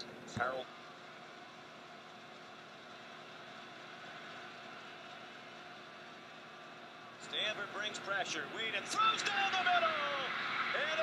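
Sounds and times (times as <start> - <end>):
stadium crowd hum: 0.0 - 11.0.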